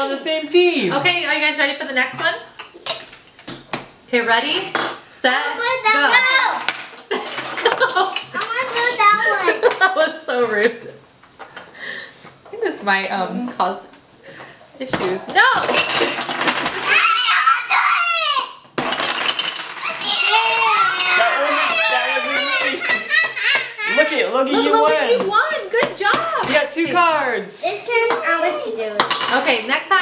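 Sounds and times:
child's voice: 0:05.6 - 0:06.6, 0:08.4 - 0:09.6, 0:16.8 - 0:18.6, 0:19.8 - 0:22.9, 0:27.6 - 0:29.1
wooden blocks clattering on table: 0:15.6 - 0:17.0, 0:18.8 - 0:23.7
children's excited voices and squeals: 0:16.8 - 0:18.6, 0:19.8 - 0:24.1.

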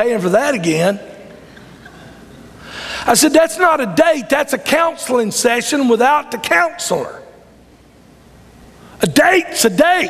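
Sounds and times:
man's quick intake of breath: 0:02.6 - 0:03.1.

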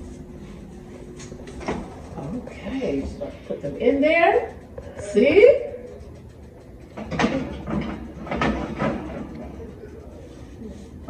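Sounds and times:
oven rack rattling: 0:01.5 - 0:10.2.

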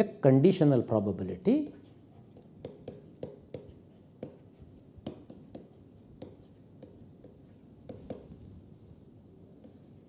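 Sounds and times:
pen scratching on paper: 0:01.8 - 0:08.3.

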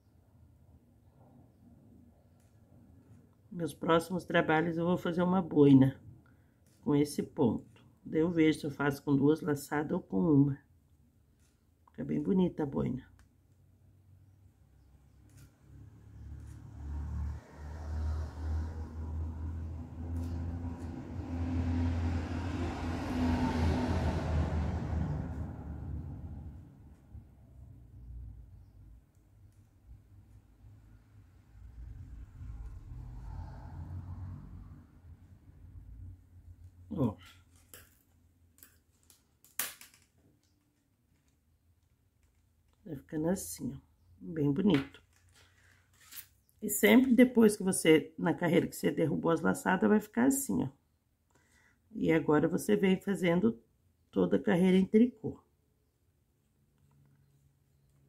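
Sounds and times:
vehicle engine passing by: 0:15.4 - 0:28.5, 0:30.4 - 0:37.1.

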